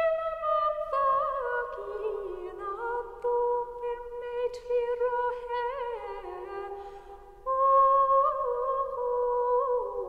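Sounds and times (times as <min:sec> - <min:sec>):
woman singing a lament: 0:00.0 - 0:10.0.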